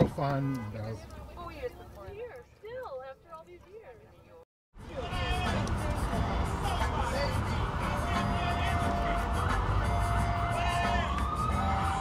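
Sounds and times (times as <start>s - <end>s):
city traffic rumble: 0.0s - 12.0s
emergency vehicle siren: 7.6s - 12.0s.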